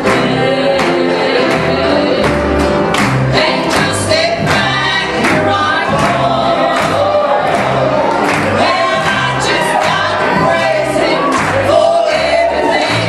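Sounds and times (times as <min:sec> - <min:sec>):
bass and beat: 0:00.0 - 0:13.0
piano accompaniment: 0:00.0 - 0:13.0
women singing gospel: 0:00.0 - 0:13.0.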